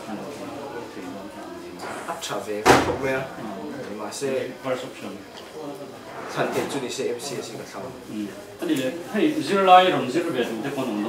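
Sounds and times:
men talking: 2.1s - 11.0s.

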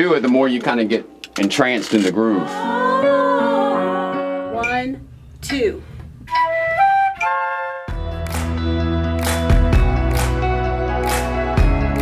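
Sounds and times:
flutes playing held notes: 6.3s - 8.3s
backing track with deep bass: 7.9s - 12.0s.

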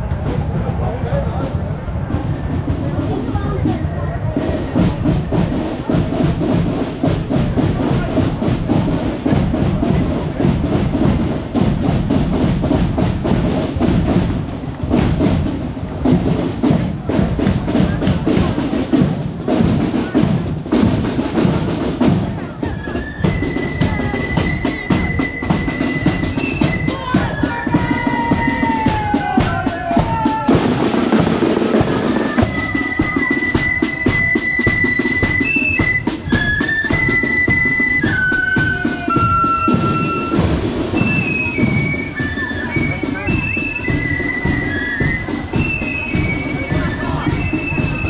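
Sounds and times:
marching drums beat: 0.0s - 48.0s
high flute notes: 22.3s - 48.0s.

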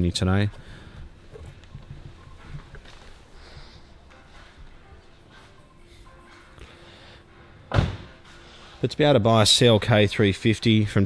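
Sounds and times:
faint background music: 0.0s - 11.0s
car door slamming: 7.7s - 8.2s.

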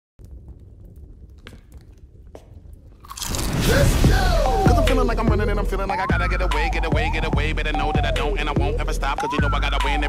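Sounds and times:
fire flaring whoosh: 0.2s - 5.2s
tortilla chip crunching: 3.0s - 3.6s.

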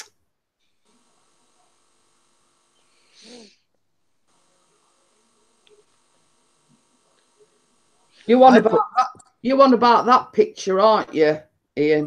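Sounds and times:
breathy vocal sound from person: 3.2s - 3.6s.

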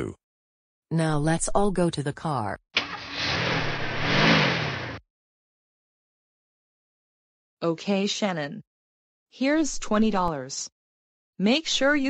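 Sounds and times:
car engine revving: 2.8s - 5.0s.

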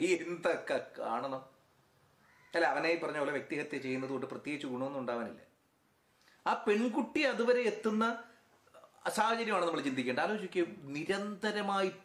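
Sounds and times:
man speaking: 0.0s - 1.6s, 2.6s - 5.5s, 6.4s - 12.0s.

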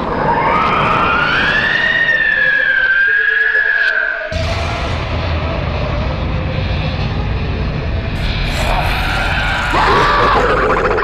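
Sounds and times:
ghostly wailing: 0.0s - 11.0s
low rumbling drone: 4.3s - 11.0s.

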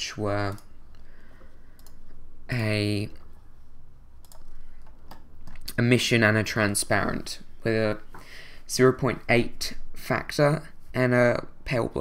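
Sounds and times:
computer keyboard typing: 1.8s - 2.0s, 4.2s - 5.7s.

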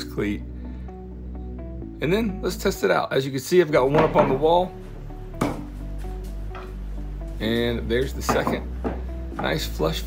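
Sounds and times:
background music: 0.0s - 10.0s
wooden shelf knocking on wall: 5.4s - 5.7s, 8.2s - 9.6s.

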